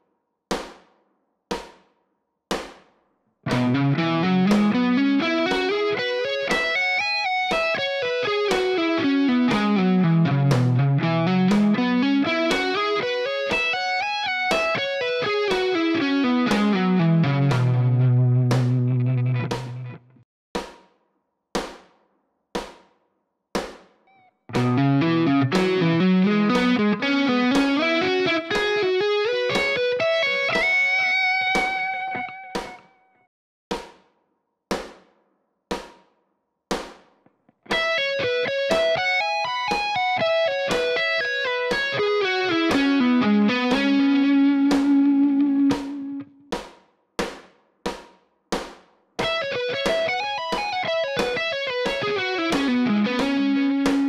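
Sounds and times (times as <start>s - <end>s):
click beat: 3.5s - 20.0s, 24.5s - 32.9s, 37.7s - 48.0s, 48.6s - 54.0s
electric guitar fast licks: 3.5s - 20.0s, 24.5s - 32.9s, 37.7s - 46.3s, 49.2s - 54.0s.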